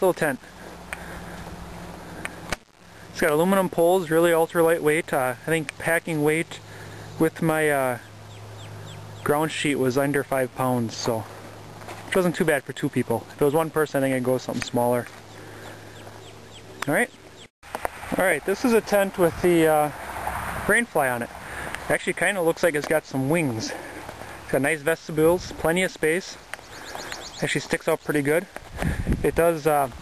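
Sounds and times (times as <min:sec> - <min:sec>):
low hum with light hiss: 0:00.0 - 0:17.5
faint high bird chirps: 0:26.6 - 0:27.6.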